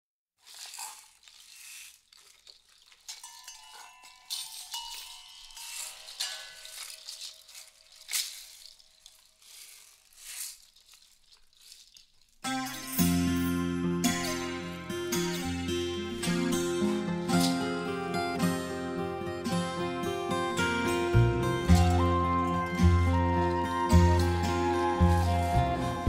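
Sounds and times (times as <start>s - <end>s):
rattle shaking: 0.4s - 14.4s.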